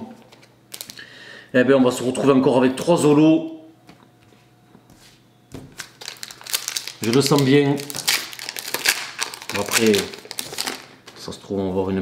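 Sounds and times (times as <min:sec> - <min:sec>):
foil wrapper crinkling: 0:00.7 - 0:01.0, 0:05.7 - 0:11.3.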